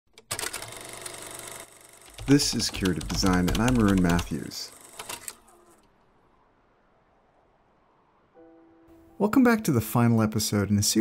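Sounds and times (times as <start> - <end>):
rapid mechanical clicks: 0.1 - 5.8.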